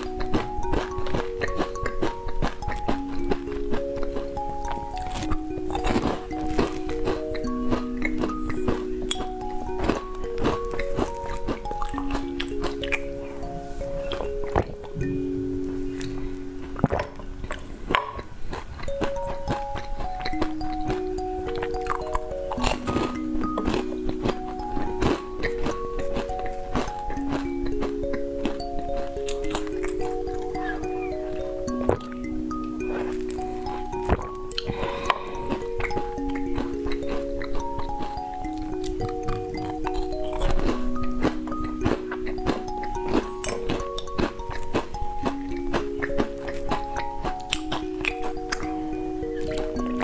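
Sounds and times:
background music with held notes: 0:00.0 - 0:50.0
mouth sounds of eating and drinking: 0:00.0 - 0:50.0.

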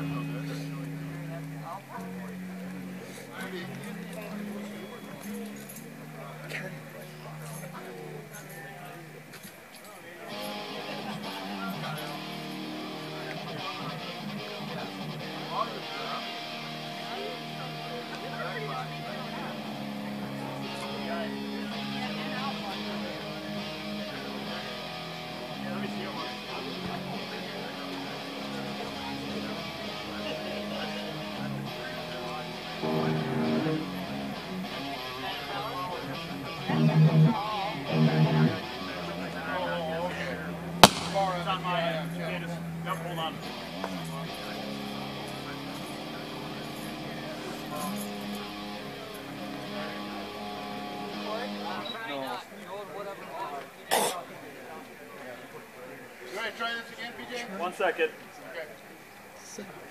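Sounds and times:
electric guitars noodling: 0:00.0 - 0:09.3, 0:10.3 - 0:51.8
sharp click: 0:40.8 - 0:41.4.

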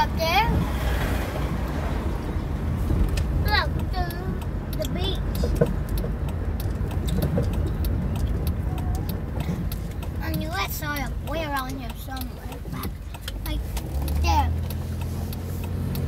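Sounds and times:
car engine and tyres rumbling: 0:00.0 - 0:16.0
voices: 0:08.5 - 0:14.8.

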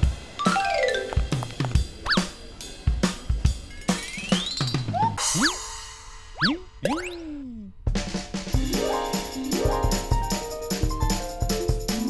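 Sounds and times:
drum-led music: 0:00.0 - 0:12.0
cartoon boing sound effects: 0:06.4 - 0:07.7.

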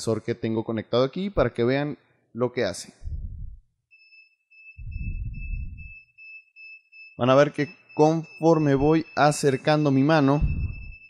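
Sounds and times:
low muffled rumbles: 0:02.9 - 0:03.7, 0:04.8 - 0:05.9, 0:10.4 - 0:11.0
high-pitched buzzer beeping: 0:04.0 - 0:11.0.

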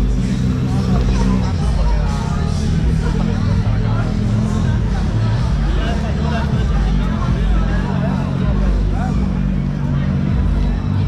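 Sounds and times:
motorbike: 0:00.0 - 0:11.0
passers-by talking: 0:00.0 - 0:11.0
road traffic rumble: 0:00.0 - 0:11.0.

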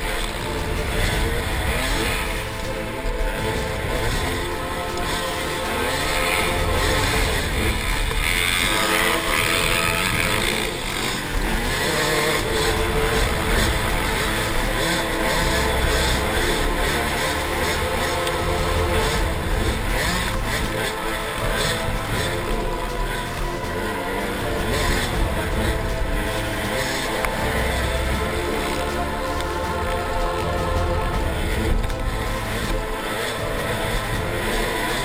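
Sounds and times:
dirt bike engine revving: 0:00.0 - 0:35.0.

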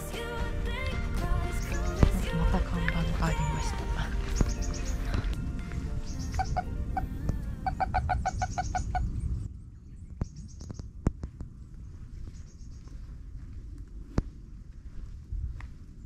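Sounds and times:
background music: 0:00.0 - 0:08.3
small bird chirping: 0:04.3 - 0:05.1, 0:06.0 - 0:06.7, 0:07.7 - 0:11.0, 0:11.9 - 0:13.1.

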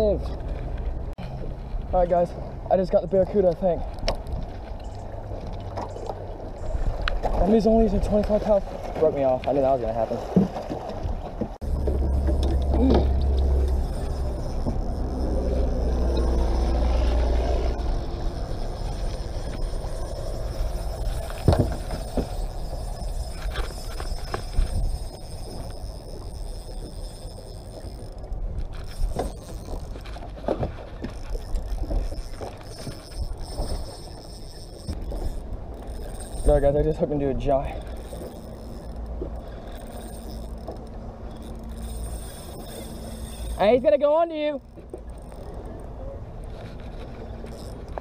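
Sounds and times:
low rumble: 0:11.6 - 0:30.1.

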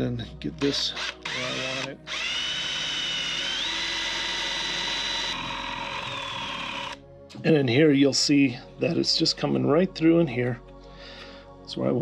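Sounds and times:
electric drill whining: 0:01.0 - 0:07.0.

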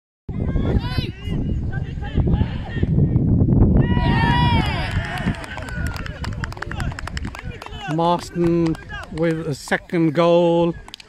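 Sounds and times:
wind rumble on microphone: 0:00.3 - 0:09.8
players shouting: 0:03.8 - 0:09.2.

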